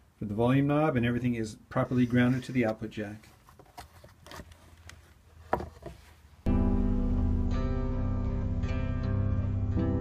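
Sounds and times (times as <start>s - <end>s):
handling a wooden guitar: 1.8s - 6.3s.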